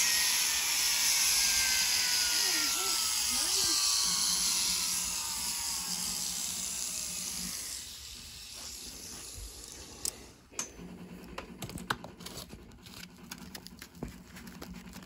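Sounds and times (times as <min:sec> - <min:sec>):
rotary carving tool whine: 0:00.0 - 0:15.0
sandpaper crinkling: 0:12.2 - 0:15.0.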